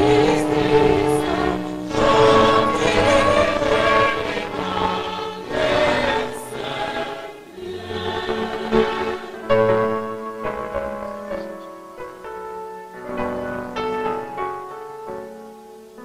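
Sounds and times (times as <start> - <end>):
mixed choir singing a hymn: 0.0 - 10.8.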